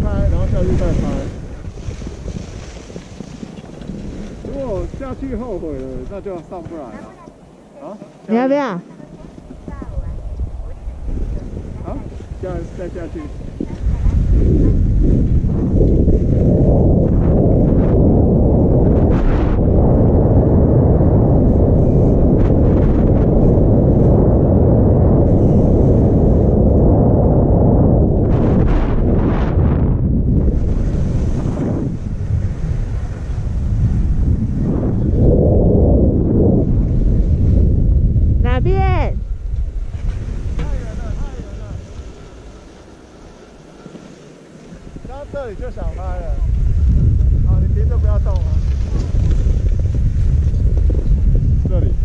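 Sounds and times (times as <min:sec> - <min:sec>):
wind buffeting microphone: 0:00.0 - 0:52.0
skis hissing over snow: 0:40.8 - 0:46.2.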